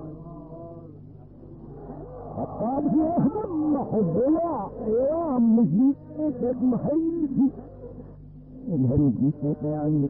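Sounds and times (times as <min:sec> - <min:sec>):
low steady hum: 0:00.0 - 0:10.0
man speaking on muffled tape: 0:08.7 - 0:10.0.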